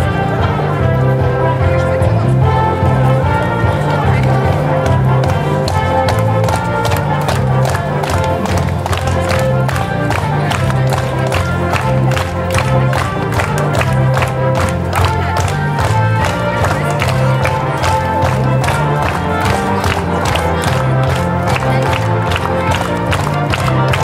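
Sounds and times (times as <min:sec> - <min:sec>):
upbeat dance music with vocals: 0:00.3 - 0:24.0
crowd clapping in time: 0:03.3 - 0:24.0.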